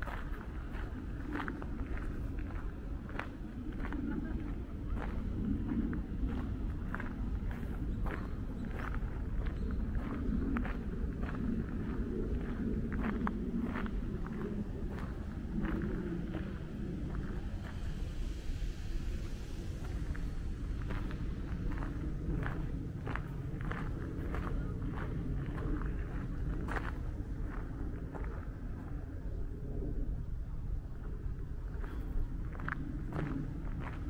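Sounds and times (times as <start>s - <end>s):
steady low rumble: 0.0s - 34.0s.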